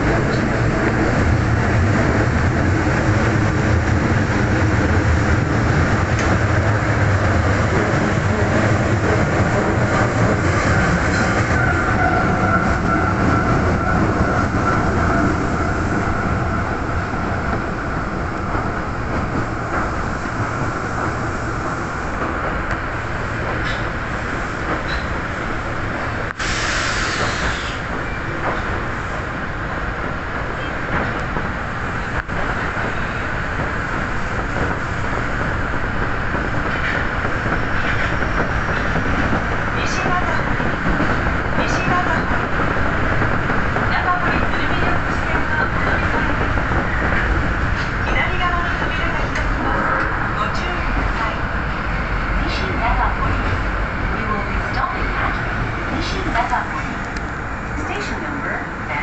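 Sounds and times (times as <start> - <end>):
train wheels rumbling on rail: 0.0 - 59.0
burst of hiss: 26.4 - 27.8.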